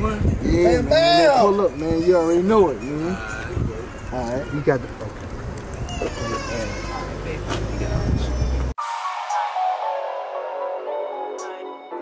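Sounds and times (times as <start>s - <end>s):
men talking: 0.0s - 8.7s.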